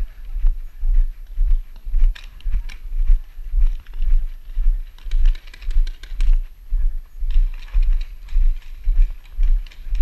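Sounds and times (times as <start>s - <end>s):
footsteps on packed dirt: 0.0s - 10.0s
gear rattling and clicking: 5.0s - 6.4s, 7.3s - 10.0s.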